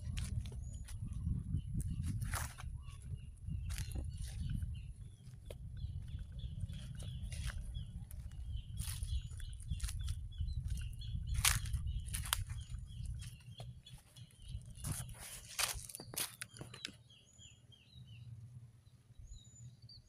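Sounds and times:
footsteps through grass and leaves: 0.0 - 1.0, 1.8 - 16.9
wind rumble on microphone: 0.0 - 16.8
small birds chirping: 0.0 - 20.0.

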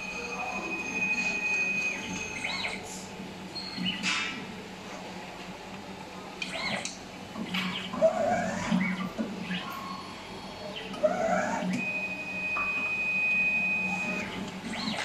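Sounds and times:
mechanical whirring: 0.0 - 3.0, 6.4 - 15.0.

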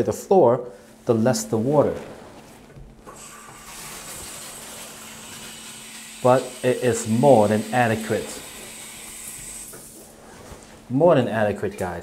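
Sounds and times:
shower spraying water onto tile: 3.1 - 10.1.

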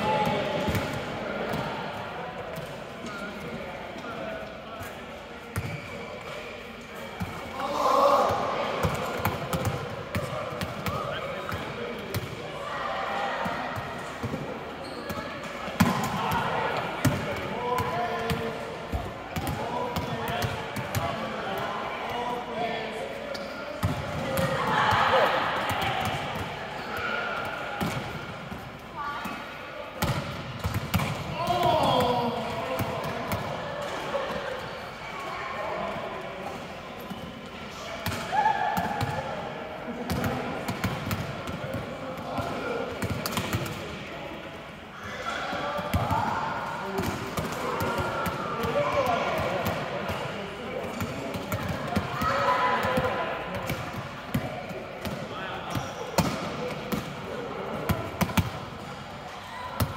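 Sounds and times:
players' voices: 0.0 - 59.9
volleyballs struck and bouncing: 23.8 - 29.4, 30.0 - 34.0, 40.0 - 43.9, 52.8 - 58.8.

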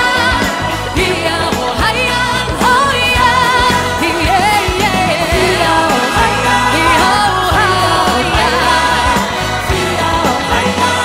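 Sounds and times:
live pop song with band: 0.0 - 11.0.

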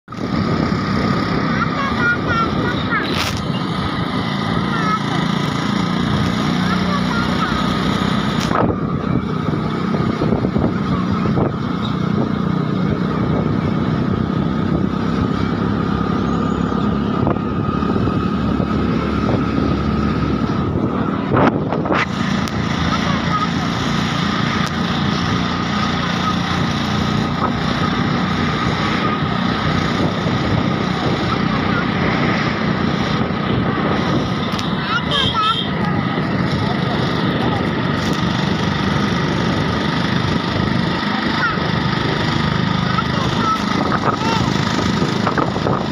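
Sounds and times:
wind and road noise: 0.0 - 45.9
motorcycle engine running: 0.1 - 45.9.

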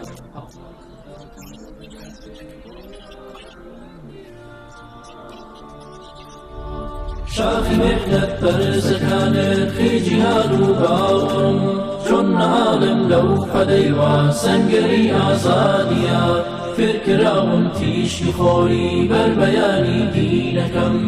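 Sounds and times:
layered voices chanting song: 0.0 - 21.0.

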